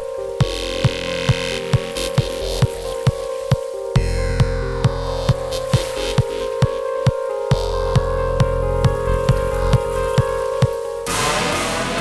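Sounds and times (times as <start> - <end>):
trance music: 0.0 - 12.0.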